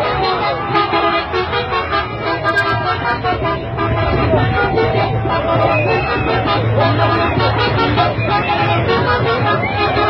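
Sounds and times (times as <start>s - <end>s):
bus horn: 0.0s - 10.0s
music: 0.0s - 10.0s
voices: 0.0s - 10.0s.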